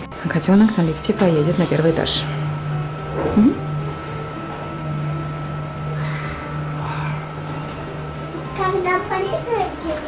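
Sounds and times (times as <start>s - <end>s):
lift humming: 0.0s - 10.0s.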